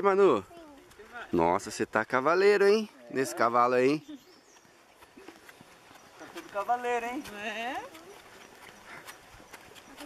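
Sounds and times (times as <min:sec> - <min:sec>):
hooves clip-clopping on dirt: 0:00.0 - 0:10.0.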